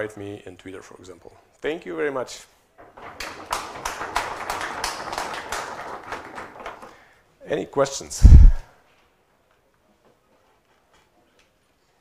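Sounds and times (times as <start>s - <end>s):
audience applauding: 3.2s - 6.9s.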